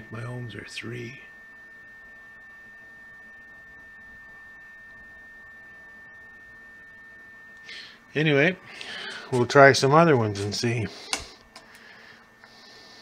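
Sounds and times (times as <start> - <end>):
faint lower tone: 0.0 - 11.0
high-pitched electronic whine: 0.0 - 13.0.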